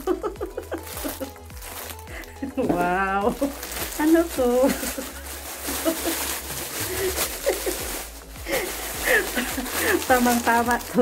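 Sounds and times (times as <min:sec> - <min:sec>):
woman laughing in breathy bursts: 0:00.0 - 0:01.4, 0:05.7 - 0:10.0
plastic bag rustling: 0:00.0 - 0:11.0.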